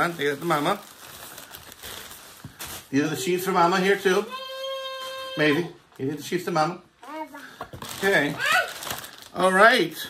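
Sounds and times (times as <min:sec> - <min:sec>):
packaged items rustling in a box: 0:00.0 - 0:02.9, 0:07.7 - 0:09.6
sharp crinkles: 0:00.0 - 0:02.9, 0:07.8 - 0:09.5.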